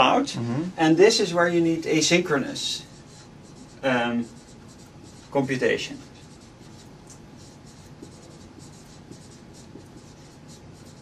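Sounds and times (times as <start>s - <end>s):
marker writing on whiteboard: 1.2s - 11.0s.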